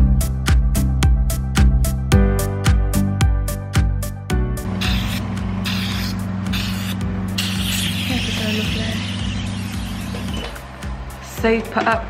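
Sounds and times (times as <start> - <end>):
vacuum pump humming: 4.6 - 12.0
suction pen hissing: 4.8 - 10.4.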